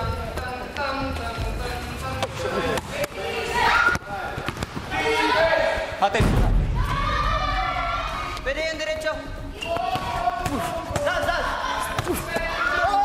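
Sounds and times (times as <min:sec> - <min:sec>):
players shouting: 0:02.7 - 0:06.0, 0:09.5 - 0:13.0.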